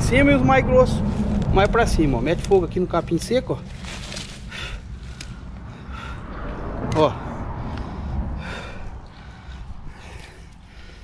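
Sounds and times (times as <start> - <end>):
low steady rumble: 0.0 - 11.0.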